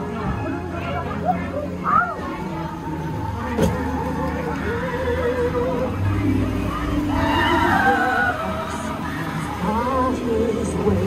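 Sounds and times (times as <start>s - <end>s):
ride soundtrack music: 0.0s - 11.0s.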